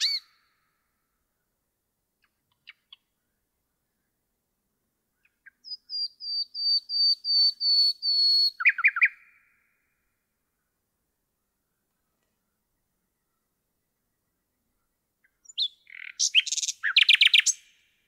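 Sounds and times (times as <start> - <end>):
nightingale singing: 0.0 - 0.8, 2.2 - 4.2, 5.1 - 10.8, 11.4 - 18.0.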